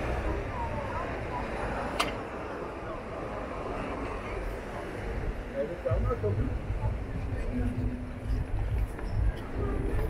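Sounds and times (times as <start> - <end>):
faint distant voices: 0.0 - 10.0
steady low rumble: 0.0 - 10.0.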